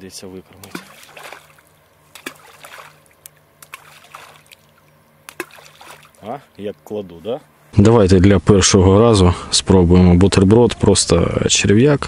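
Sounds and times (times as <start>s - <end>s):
groundbait splashing into water: 0.6s - 6.2s.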